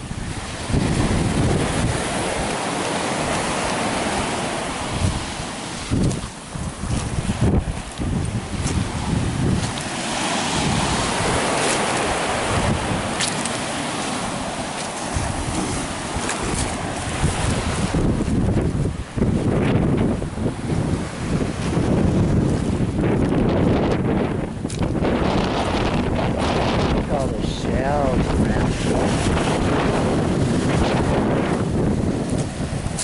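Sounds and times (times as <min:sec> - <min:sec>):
waves breaking on pebble beach: 0:00.0 - 0:33.0
wind buffeting microphone: 0:00.0 - 0:33.0.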